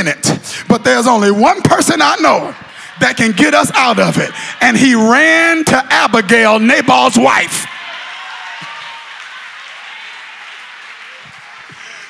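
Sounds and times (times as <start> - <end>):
congregation applauding: 1.6 - 12.0.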